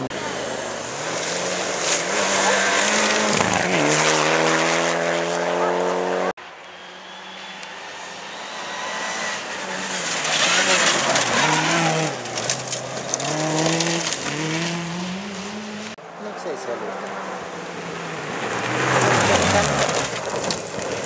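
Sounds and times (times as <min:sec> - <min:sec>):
car engine approaching through gear changes: 0:00.0 - 0:16.0
rally car engine at high revs: 0:00.0 - 0:16.0, 0:16.8 - 0:21.0.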